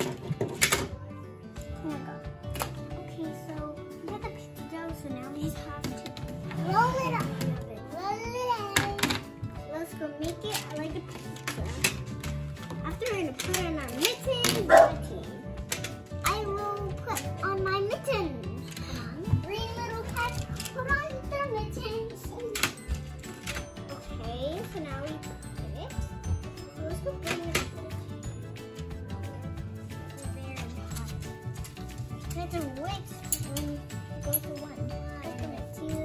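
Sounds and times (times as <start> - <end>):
background music: 0.0 - 36.0
plastic tiles clicking together: 30.6 - 33.7.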